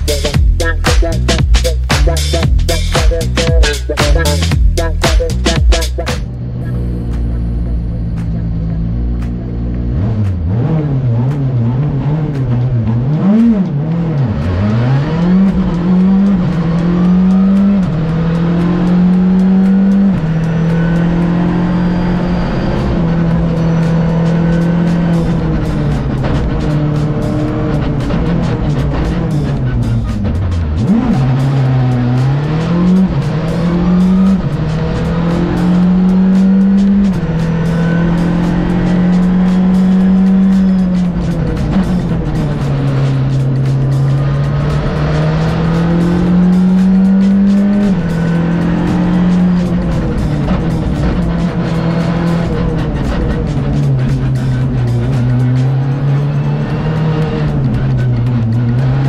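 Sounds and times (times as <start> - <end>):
rally car engine revving: 0.0 - 59.0.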